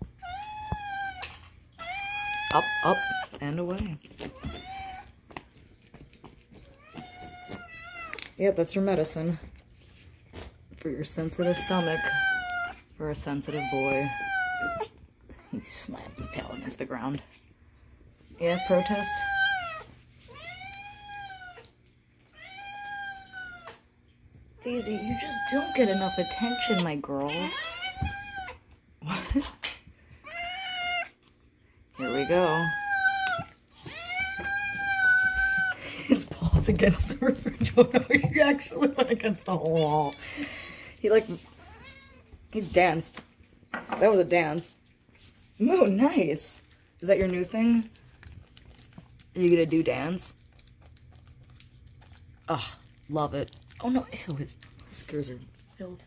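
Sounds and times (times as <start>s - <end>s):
cat meowing: 0.2s - 3.3s, 11.4s - 12.8s, 13.5s - 14.9s, 18.5s - 21.7s, 22.4s - 23.8s, 24.7s - 28.6s, 30.2s - 31.2s, 32.0s - 35.8s.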